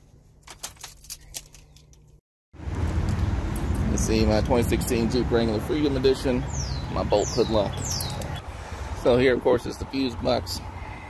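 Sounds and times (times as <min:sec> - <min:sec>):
light clicks and jangles: 0:03.0 - 0:04.6.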